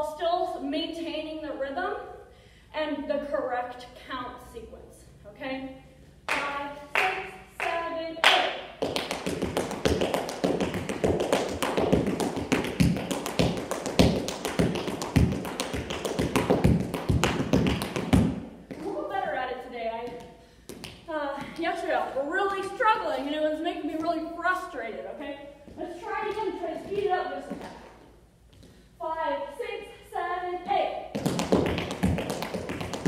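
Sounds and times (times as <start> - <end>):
woman speaking: 2.8 - 8.6, 18.8 - 20.2, 21.1 - 27.6
tap shoes on hard floor: 8.8 - 18.9, 31.1 - 33.0.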